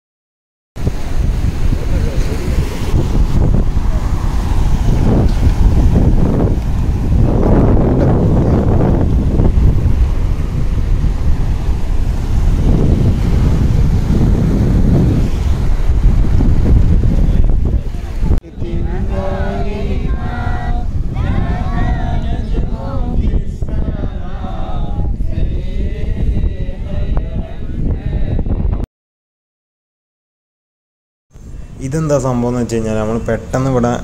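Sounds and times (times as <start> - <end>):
surf washing over rocks: 0.8 - 22.7
wind noise on microphone: 0.8 - 28.9, 31.4 - 34.0
voices: 1.6 - 5.4, 17.3 - 27.8, 31.7 - 34.0.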